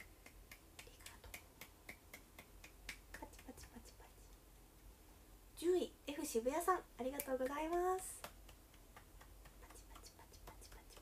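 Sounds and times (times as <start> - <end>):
faint evenly spaced clicks: 0.0 - 5.0, 7.0 - 11.0.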